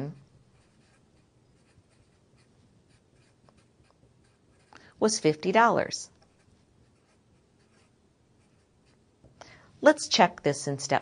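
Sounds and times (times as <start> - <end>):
marker writing strokes: 0.0 - 5.3, 6.1 - 9.0.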